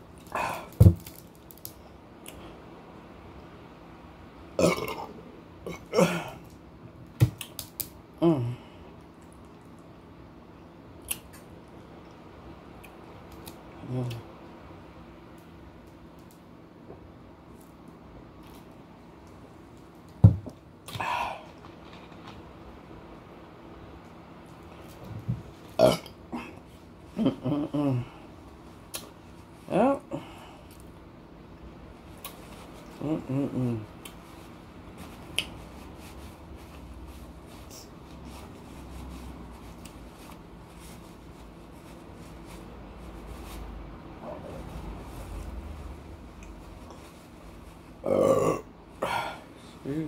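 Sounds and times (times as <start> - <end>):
woman burping loudly: 4.6 - 6.4, 48.1 - 48.7
faint throat sound: 48.0 - 49.4.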